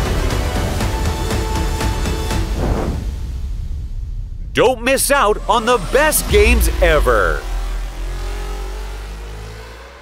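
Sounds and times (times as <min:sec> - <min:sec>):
engine with rising pitch: 0:05.0 - 0:10.0.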